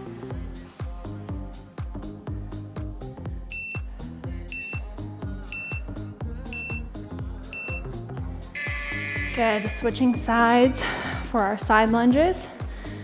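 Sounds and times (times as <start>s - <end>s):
workout music with steady beat: 0.0s - 13.0s
timer short high beeps: 4.5s - 4.9s, 5.5s - 5.9s, 6.5s - 6.9s, 7.5s - 7.9s
longer timer tone: 5.5s - 5.9s, 6.5s - 6.9s, 7.5s - 7.9s, 8.6s - 10.2s.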